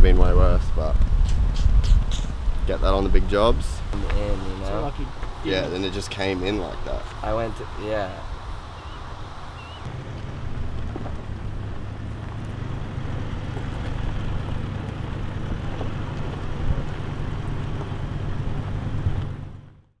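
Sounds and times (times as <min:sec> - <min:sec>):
truck engine low rumble: 0:00.0 - 0:20.0.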